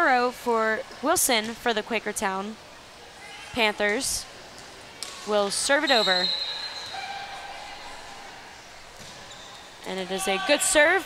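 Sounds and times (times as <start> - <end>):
gymnasium background noise: 0.0 - 11.0.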